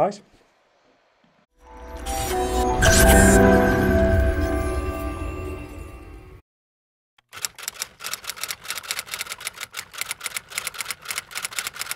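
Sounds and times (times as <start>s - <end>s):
rapid mechanical clicks: 7.2s - 11.9s.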